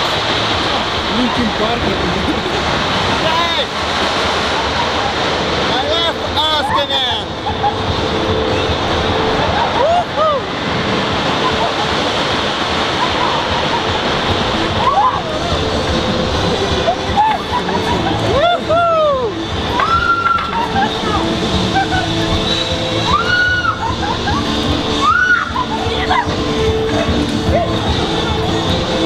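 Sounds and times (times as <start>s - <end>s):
steady rushing noise: 0.0s - 29.0s.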